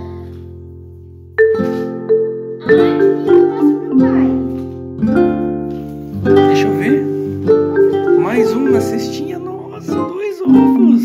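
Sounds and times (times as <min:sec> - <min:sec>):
light plucked string music: 0:00.0 - 0:11.0
small child's voice: 0:02.6 - 0:04.8.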